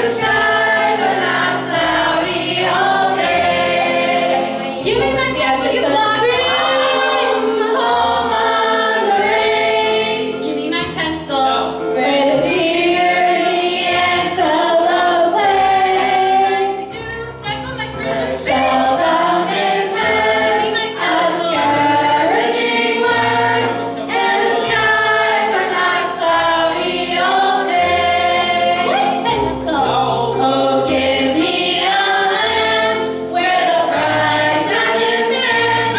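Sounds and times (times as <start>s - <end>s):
teenage choir singing: 0.0s - 35.9s.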